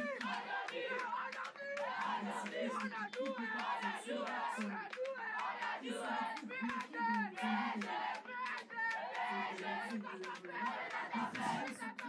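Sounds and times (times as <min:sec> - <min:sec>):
sharp claps or stamps: 0:00.0 - 0:12.0
team chanting and shouting: 0:00.0 - 0:12.0.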